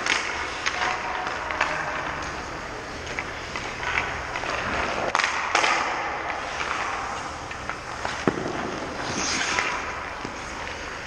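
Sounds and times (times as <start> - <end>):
skate blades scraping ice: 0.0 - 11.0.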